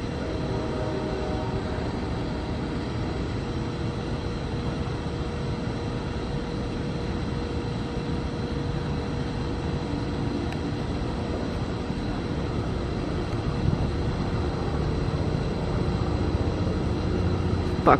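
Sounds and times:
diesel locomotive rumble: 0:00.0 - 0:07.3, 0:08.0 - 0:17.9
thin steady hum: 0:00.0 - 0:17.9.

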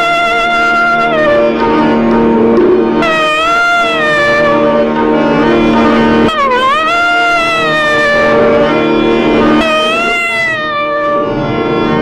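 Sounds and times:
clarinet long held note: 0:00.0 - 0:12.0
steady drone: 0:00.0 - 0:12.0.

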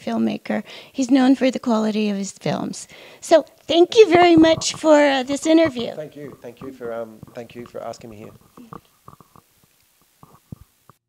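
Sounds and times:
soft murmurs: 0:03.8 - 0:09.5.

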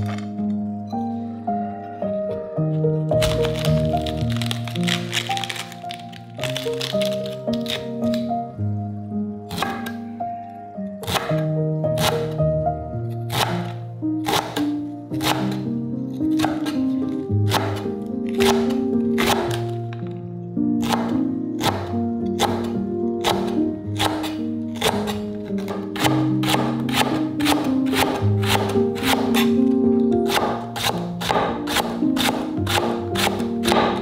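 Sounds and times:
background music: 0:00.0 - 0:34.0
knife cutting onto wooden board: 0:09.5 - 0:10.0, 0:11.0 - 0:12.3, 0:16.3 - 0:16.8
knife slicing cabbage on board: 0:09.5 - 0:10.0, 0:11.0 - 0:12.4, 0:13.3 - 0:15.6, 0:16.3 - 0:16.9, 0:17.5 - 0:19.7, 0:20.8 - 0:29.6, 0:30.2 - 0:34.0.

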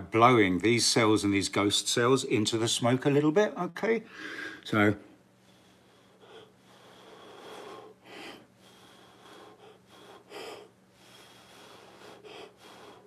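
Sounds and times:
soft puffs of breath blowing: 0:04.1 - 0:04.6, 0:05.4 - 0:13.0.

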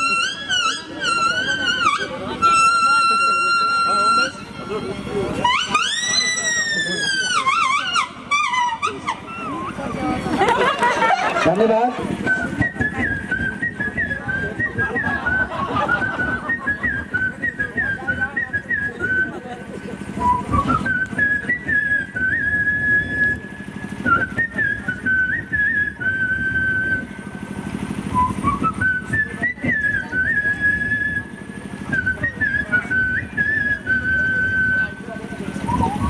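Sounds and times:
man whistling a folk melody: 0:00.0 - 0:04.6, 0:05.4 - 0:10.2, 0:12.1 - 0:36.0.

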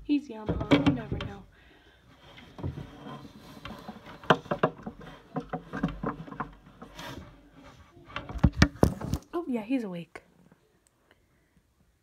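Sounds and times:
handling rustling and knocks: 0:00.0 - 0:09.5.

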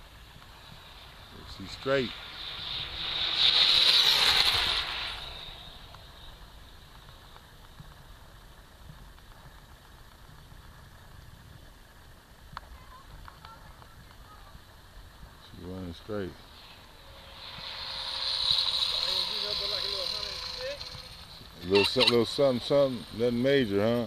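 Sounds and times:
rc car passing with high whine: 0:00.0 - 0:08.8, 0:12.6 - 0:24.0.

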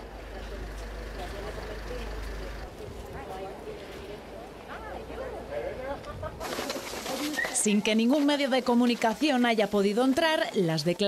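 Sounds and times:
vehicle engine rumbling: 0:00.0 - 0:04.4.

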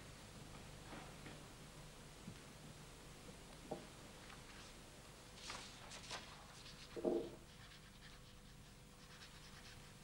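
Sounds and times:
quill pen scratching on paper: 0:06.6 - 0:10.0.

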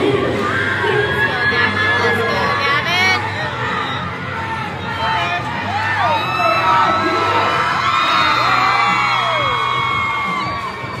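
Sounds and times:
crowd cheering and whooping: 0:00.0 - 0:02.6, 0:03.2 - 0:11.0
background arena music: 0:00.0 - 0:11.0.

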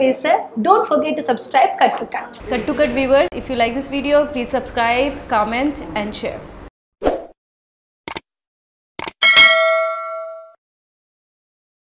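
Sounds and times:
notification bell ding: 0:09.2 - 0:10.6.

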